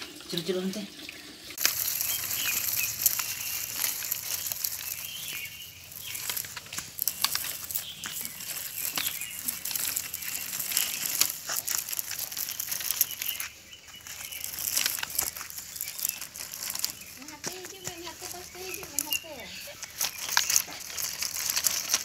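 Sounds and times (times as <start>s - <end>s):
plastic wheels crunching on sandy ground: 1.6s - 22.0s.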